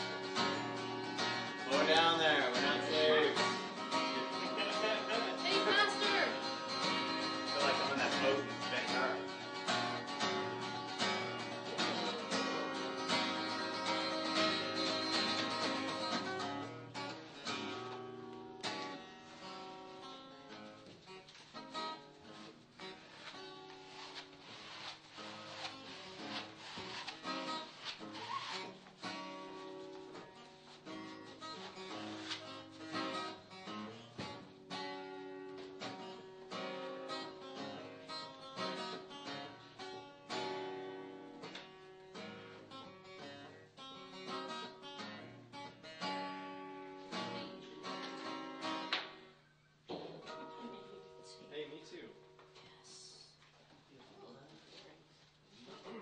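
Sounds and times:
acoustic guitar plucked and strummed: 0:00.0 - 0:52.6.

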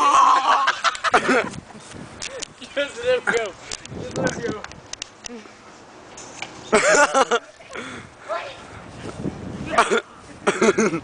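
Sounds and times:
child laughing: 0:00.0 - 0:01.6, 0:06.7 - 0:08.0, 0:09.7 - 0:11.0.

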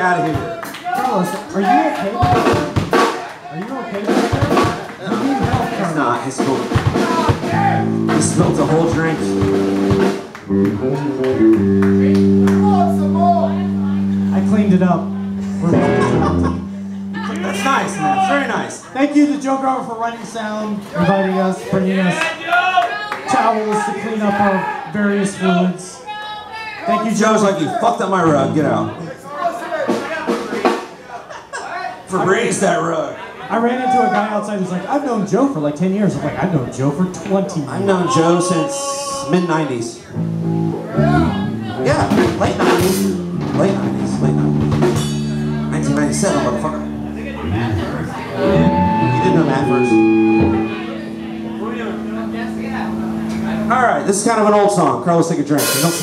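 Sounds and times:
pounding drum kit: 0:02.2 - 0:03.3, 0:04.0 - 0:18.4, 0:40.4 - 0:52.2, 0:55.6 - 0:56.0
live punk rock band: 0:06.6 - 0:18.6, 0:40.2 - 0:54.1
distorted electric guitars: 0:06.6 - 0:19.0, 0:28.2 - 0:29.2, 0:40.1 - 0:54.8
voices talking: 0:12.2 - 0:22.5, 0:26.9 - 0:30.2, 0:45.7 - 0:55.0.

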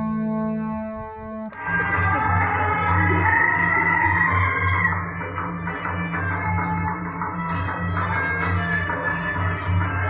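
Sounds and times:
low drum beat: 0:01.6 - 0:10.0.

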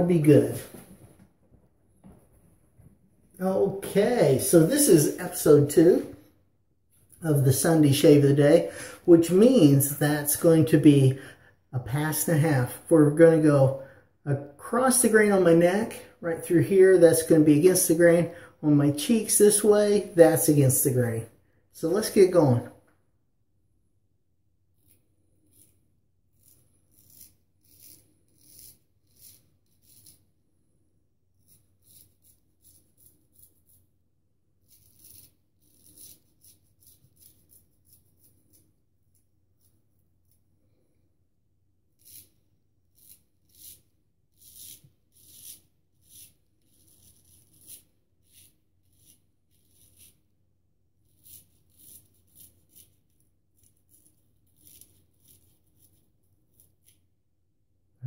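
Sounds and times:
razor scraping stubble: 0:03.7 - 0:06.0, 0:24.8 - 0:30.4, 0:31.3 - 0:33.9, 0:34.6 - 0:38.8, 0:41.9 - 0:50.3, 0:51.0 - 0:57.0.

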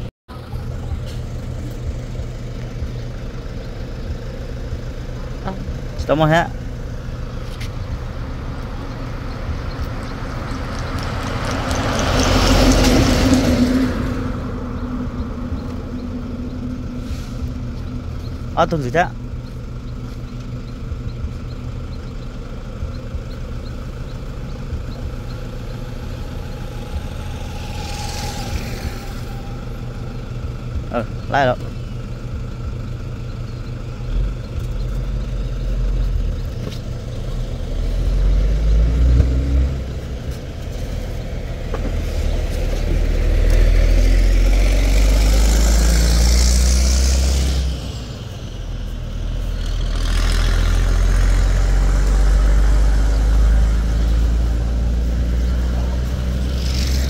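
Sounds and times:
heavy vehicles passing: 0:00.0 - 0:57.0.

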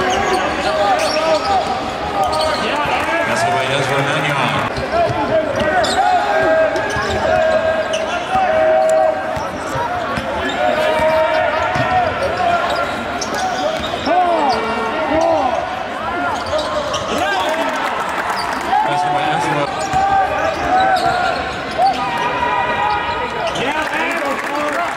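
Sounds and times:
sneakers squeaking: 0:00.0 - 0:03.2, 0:04.6 - 0:15.5, 0:16.2 - 0:17.3, 0:19.6 - 0:23.7
murmur of voices: 0:00.0 - 0:24.9.

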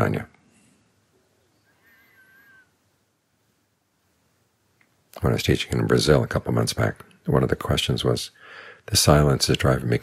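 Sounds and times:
faint high-pitched sound: 0:01.1 - 0:03.6.

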